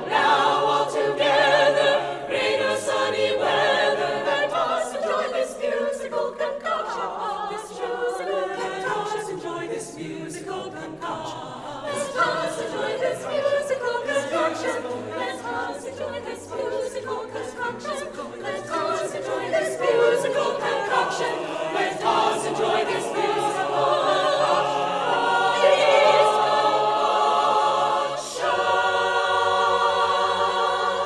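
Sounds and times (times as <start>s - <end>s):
mixed choir singing a cappella: 0.0s - 31.0s.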